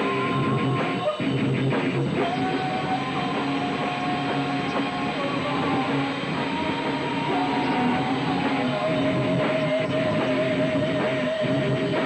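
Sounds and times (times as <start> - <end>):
distorted electric guitars with feedback: 0.0 - 12.0.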